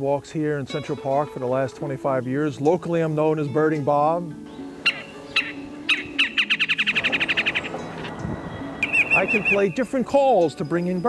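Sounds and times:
recorded bird call through speaker: 0:04.9 - 0:08.1, 0:08.8 - 0:10.0.

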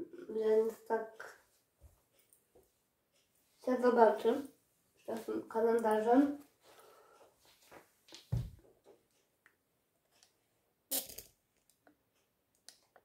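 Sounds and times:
soft low thump: 0:08.3 - 0:08.6.

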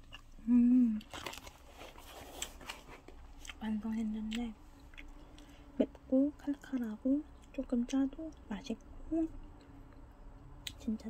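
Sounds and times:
soft chewing of noodles: 0:00.0 - 0:05.8.

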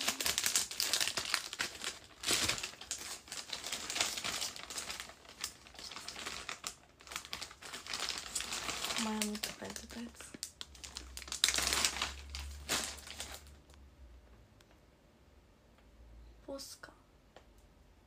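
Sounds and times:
plastic packaging crinkling: 0:00.0 - 0:13.8.

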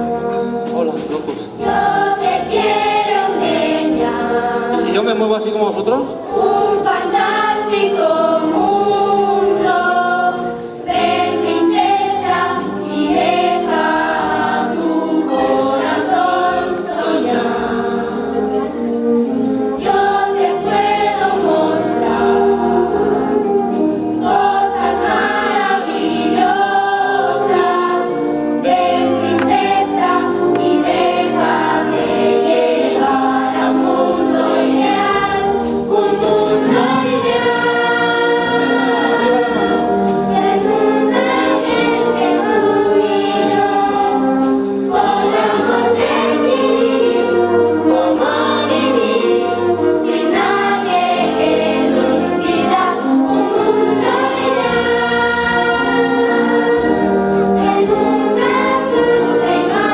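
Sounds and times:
wind band playing: 0:00.0 - 0:59.9
children's chorus singing: 0:01.4 - 0:05.0, 0:06.2 - 0:59.9.

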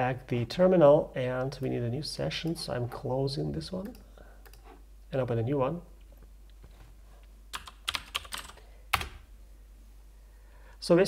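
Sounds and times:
computer keyboard keystrokes: 0:07.6 - 0:09.2.

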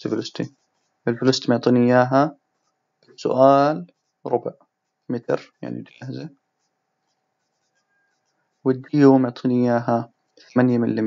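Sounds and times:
stylus tapping and scratching: 0:00.4 - 0:01.1, 0:02.4 - 0:03.2, 0:03.8 - 0:09.0.

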